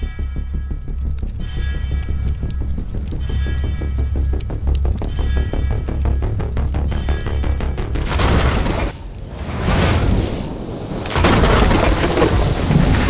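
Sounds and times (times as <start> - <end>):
advert music with heavy bass: 0.0 - 9.2.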